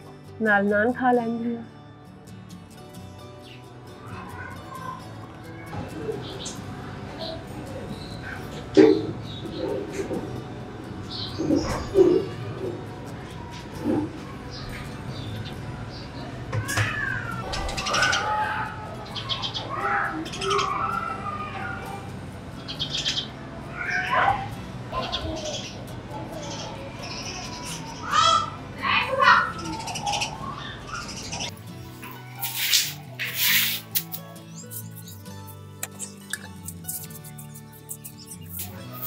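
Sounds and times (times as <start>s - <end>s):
sparrows chirping: 3.0s - 5.1s, 5.8s - 39.0s
pigeon cooing: 7.2s - 10.4s, 11.1s - 14.9s, 16.6s - 22.1s, 22.8s - 31.5s.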